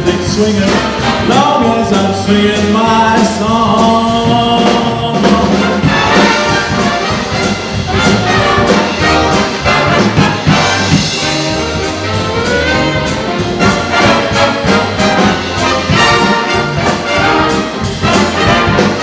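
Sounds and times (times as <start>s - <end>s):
big band playing swing jazz: 0.0s - 19.0s
drum kit cymbals and snare: 0.0s - 19.0s.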